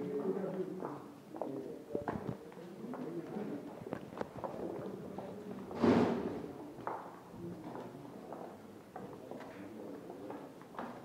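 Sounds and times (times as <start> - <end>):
faint background voices: 0.0 - 11.0
footsteps on tiled floor: 0.0 - 11.0.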